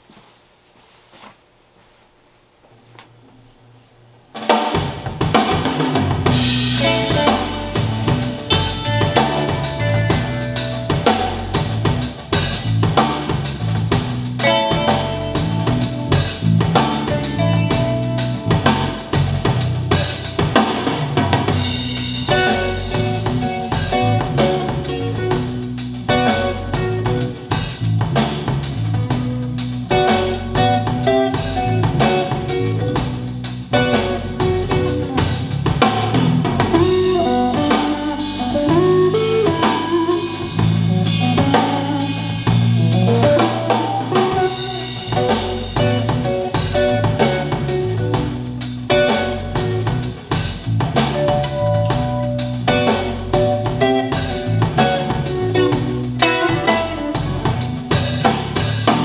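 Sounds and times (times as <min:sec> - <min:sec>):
jazz music over speakers: 0:04.3 - 0:59.0.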